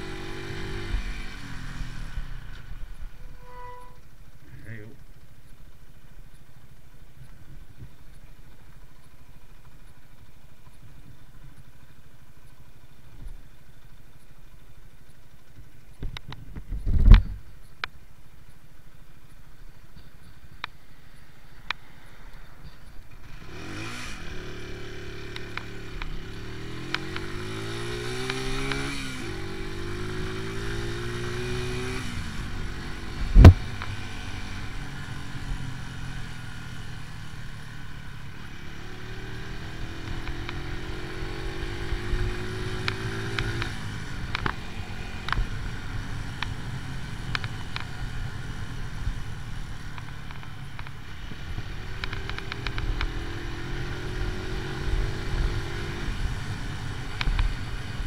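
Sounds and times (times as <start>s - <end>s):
motorcycle engine revving: 0.0s - 4.0s, 22.9s - 58.0s.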